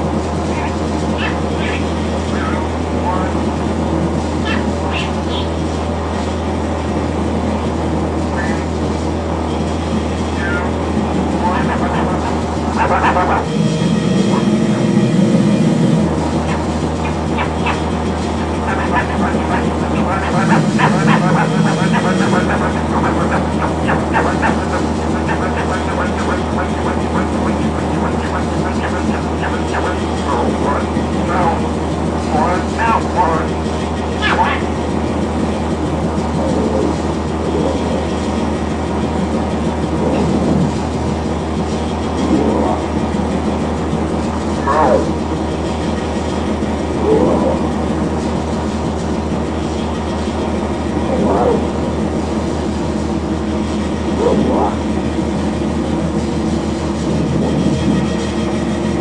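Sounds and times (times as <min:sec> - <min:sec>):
crackling wavering pitched tones: 0:00.0 - 0:59.0
experimental drone music: 0:00.0 - 0:59.0
steady low hum: 0:00.0 - 0:59.0
swooping glides: 0:00.0 - 0:59.0.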